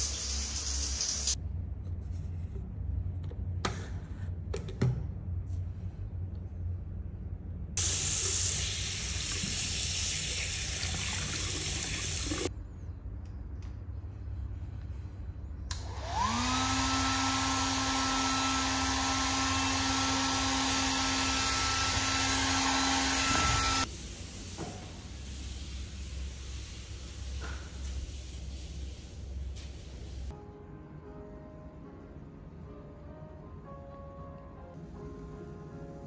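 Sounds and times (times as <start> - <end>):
tap running water: 7.8 - 12.5
hair dryer blowing: 15.7 - 23.9.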